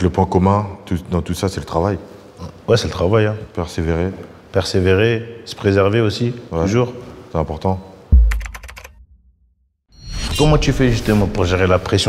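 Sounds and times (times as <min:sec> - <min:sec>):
deep bass hit: 0:08.1 - 0:09.4
sharp typing-like clicks: 0:08.2 - 0:09.0.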